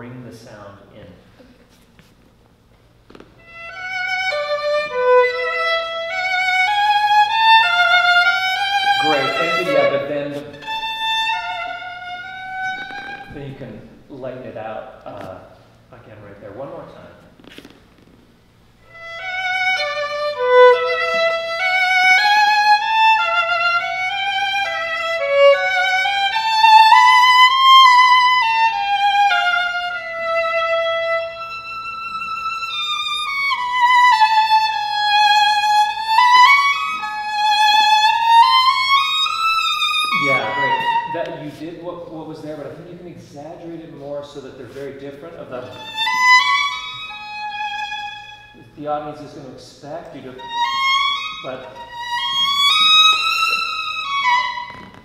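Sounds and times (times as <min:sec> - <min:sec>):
solo violin playing: 0:03.4 - 0:13.7, 0:18.8 - 0:42.0, 0:45.5 - 0:49.2, 0:50.2 - 0:55.0
man's voice: 0:09.0 - 0:10.5, 0:40.1 - 0:45.7.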